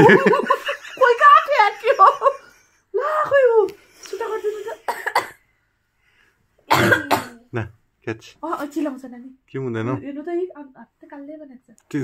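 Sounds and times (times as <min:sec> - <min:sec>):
person coughing: 0:04.9 - 0:05.4, 0:06.7 - 0:07.4.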